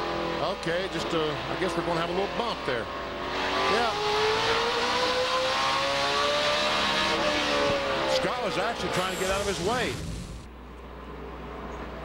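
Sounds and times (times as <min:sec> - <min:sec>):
race car in-car noise: 0:00.0 - 0:10.6.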